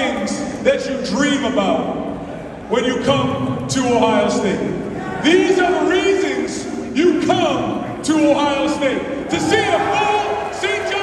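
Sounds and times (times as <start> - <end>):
man speaking through loudspeakers: 0.0 - 11.0.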